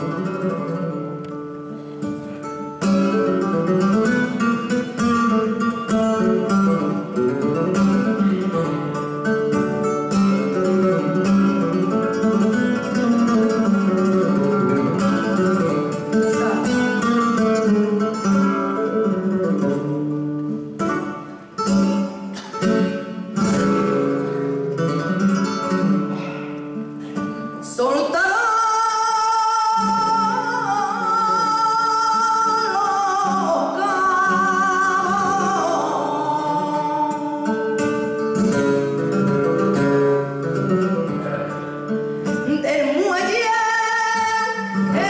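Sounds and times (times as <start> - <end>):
flamenco guitar playing: 0.0 - 45.0.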